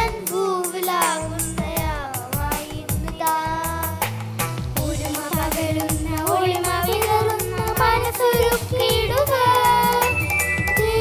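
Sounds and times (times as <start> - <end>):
children's choir singing: 0.0 - 3.9, 4.8 - 11.0
instrumental accompaniment with beat: 0.0 - 11.0.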